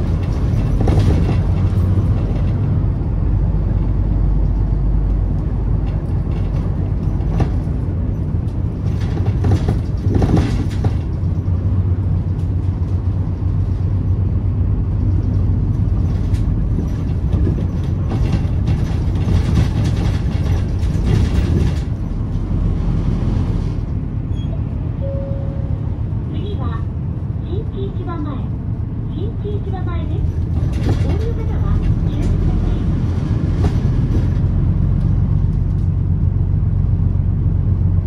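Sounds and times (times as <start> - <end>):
bus engine rumble: 0.0 - 38.0
tyres on the road: 0.0 - 38.0.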